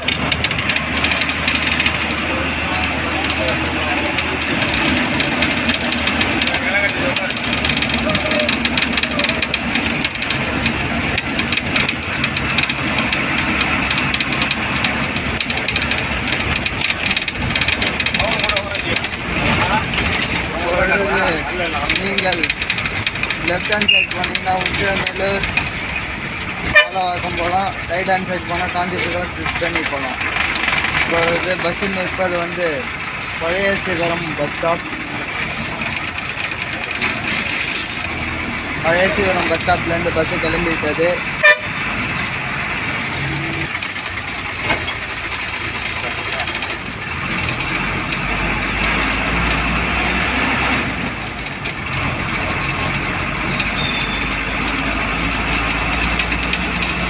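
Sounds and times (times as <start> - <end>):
bus engine running: 0.0 - 57.0
rattling fittings: 0.0 - 57.0
road noise: 0.0 - 57.0.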